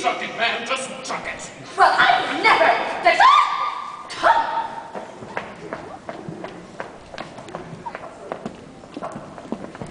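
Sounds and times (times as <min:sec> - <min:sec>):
footsteps on stage floor: 0:04.7 - 0:09.9.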